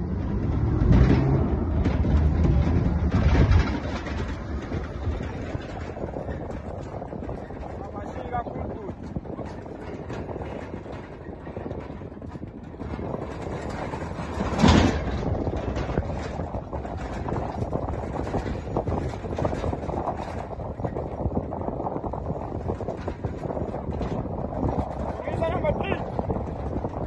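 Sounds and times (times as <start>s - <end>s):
vehicle rumbling over rough ground: 0.0s - 27.0s
horses galloping: 0.8s - 27.0s.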